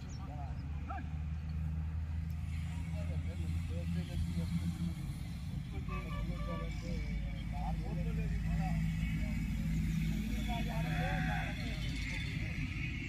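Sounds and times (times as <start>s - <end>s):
distant people talking and calling: 0.0s - 13.0s.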